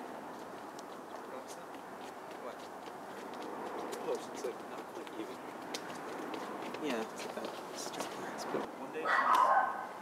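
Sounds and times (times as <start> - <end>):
steady outdoor hiss: 0.0 - 10.0
footsteps on concrete: 0.2 - 8.7.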